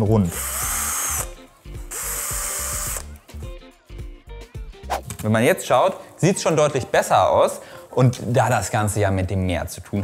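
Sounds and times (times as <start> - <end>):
cordless drill motor: 0.0 - 3.2.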